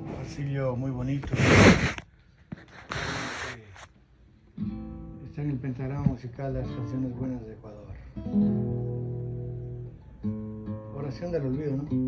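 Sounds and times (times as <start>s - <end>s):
guitar strumming: 4.5s - 12.0s.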